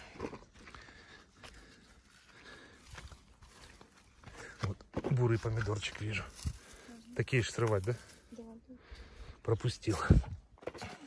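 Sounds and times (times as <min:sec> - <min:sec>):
footsteps on grass: 0:00.0 - 0:08.4.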